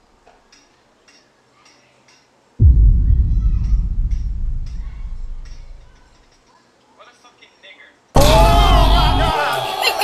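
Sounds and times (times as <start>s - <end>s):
deep boom with rumble: 2.6s - 6.0s.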